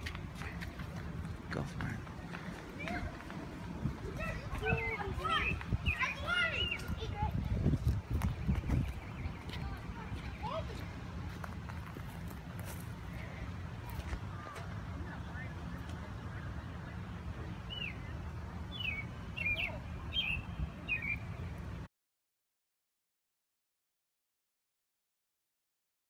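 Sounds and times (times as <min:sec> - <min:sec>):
steady low rumble: 0:00.0 - 0:21.9
high bird chirps: 0:04.5 - 0:07.1, 0:17.6 - 0:21.4.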